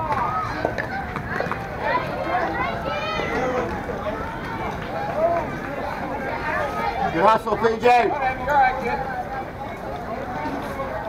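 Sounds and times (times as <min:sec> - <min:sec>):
people calling out and talking: 0:00.0 - 0:11.0.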